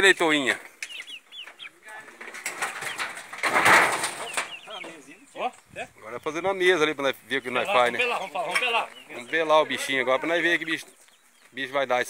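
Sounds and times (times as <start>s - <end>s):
chickens calling: 0.0s - 12.0s
loud rustling: 2.1s - 4.8s.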